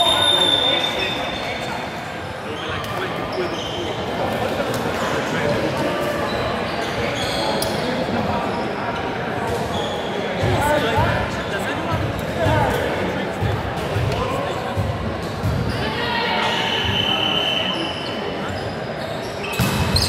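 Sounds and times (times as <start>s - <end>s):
shoes squeaking on court floor: 2.5s - 4.4s, 6.2s - 10.3s, 17.7s - 20.0s.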